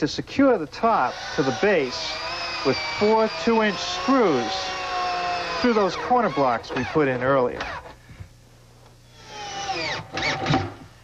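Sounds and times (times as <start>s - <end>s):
electric drill driving screw: 1.0s - 8.0s, 9.1s - 10.8s.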